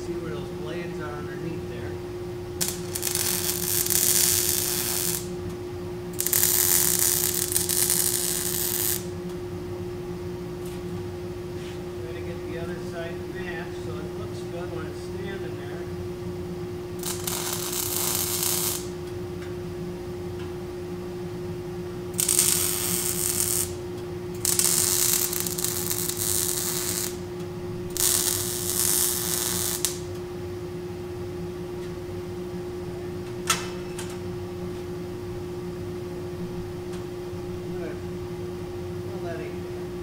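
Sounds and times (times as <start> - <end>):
steady hum: 0.0 - 40.0
mig welding: 2.5 - 5.4, 6.1 - 9.1, 17.0 - 19.0, 22.1 - 30.2.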